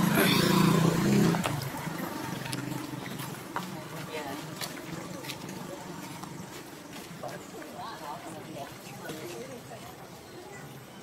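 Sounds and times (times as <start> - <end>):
distant people talking: 0.0 - 11.0
outdoor ambience: 0.0 - 11.0.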